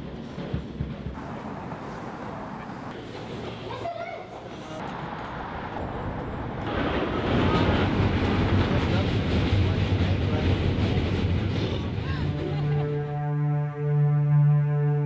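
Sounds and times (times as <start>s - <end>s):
subway train running: 0.0s - 13.0s.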